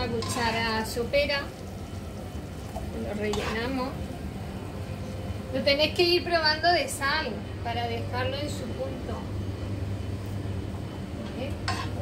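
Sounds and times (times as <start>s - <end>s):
kitchen appliance humming: 0.0s - 9.8s.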